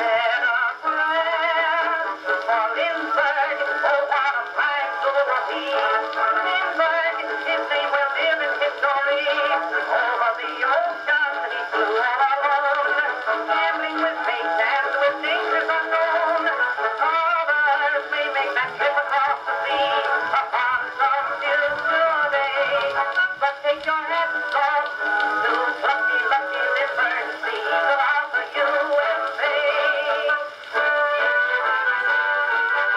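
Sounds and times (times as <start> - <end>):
phonograph playing song with band: 0.0 - 32.9.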